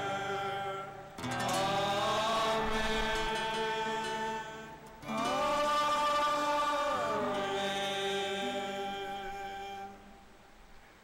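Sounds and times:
choir singing sustained notes: 0:00.0 - 0:10.6.

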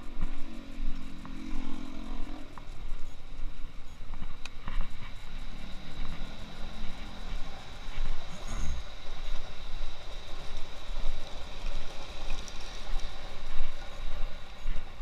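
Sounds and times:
low traffic rumble: 0:00.0 - 0:15.0
vehicle engine humming: 0:00.0 - 0:15.0.

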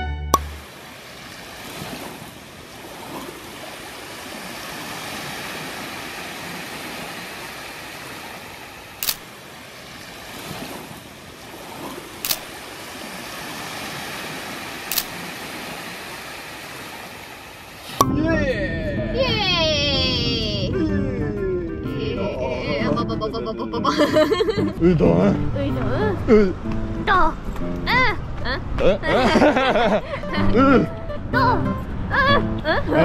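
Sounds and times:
small waves washing onto beach: 0:00.4 - 0:18.0
sharp camera shutter clicks: 0:09.0 - 0:09.3, 0:12.2 - 0:12.5, 0:14.9 - 0:15.2.

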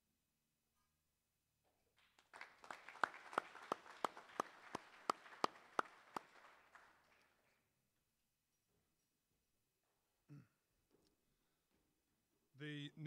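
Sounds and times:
loud regular hand claps: 0:02.0 - 0:07.5
audience applauding: 0:02.0 - 0:07.6.

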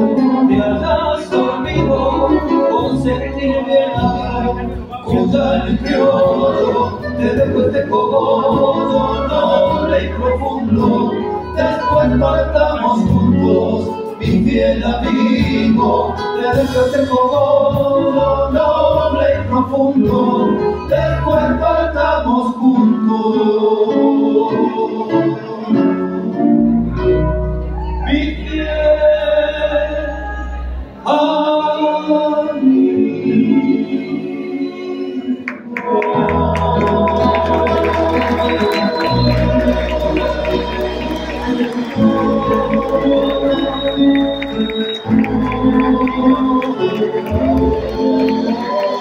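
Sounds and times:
deep bass: 0:00.0 - 0:22.4, 0:36.3 - 0:48.2
acoustic guitars playing: 0:00.0 - 0:27.8, 0:35.6 - 0:49.0.

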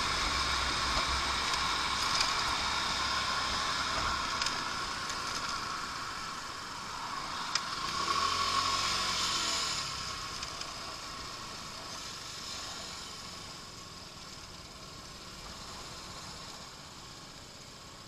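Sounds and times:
road noise: 0:00.0 - 0:18.0
scooter engine running: 0:00.0 - 0:18.0.

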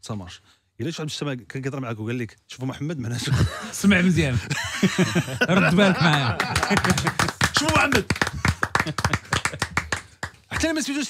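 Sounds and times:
hands clapping: 0:05.7 - 0:11.0.

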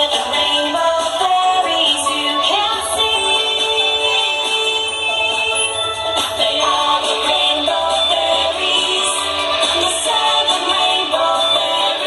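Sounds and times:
pop song: 0:00.0 - 0:12.0.

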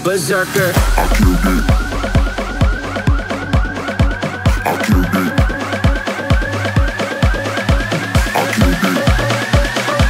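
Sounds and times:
rising synth figure: 0:00.7 - 0:06.6
deep kick drum: 0:00.8 - 0:07.8.

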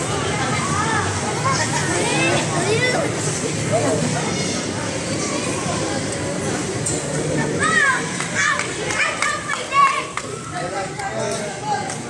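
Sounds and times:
murmur of people talking: 0:00.0 - 0:12.0
children calling out and squealing: 0:03.8 - 0:06.0, 0:07.4 - 0:10.8.

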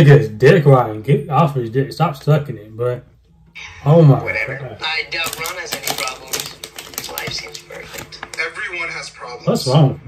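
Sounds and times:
quiet dialogue: 0:00.0 - 0:10.0.

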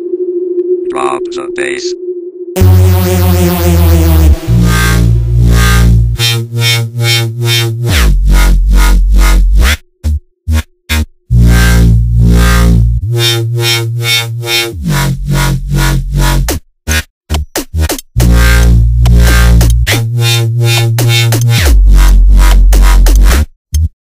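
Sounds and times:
stuttering dubstep synth bass: 0:02.6 - 0:17.0, 0:17.8 - 0:23.4.

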